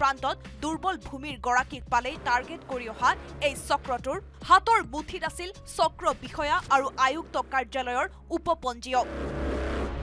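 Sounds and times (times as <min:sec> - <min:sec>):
narration voice: 0:00.0 - 0:09.1.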